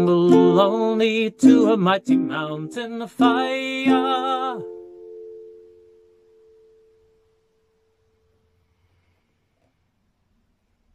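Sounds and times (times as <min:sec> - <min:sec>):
acoustic guitar chord ringing: 0:00.0 - 0:08.6.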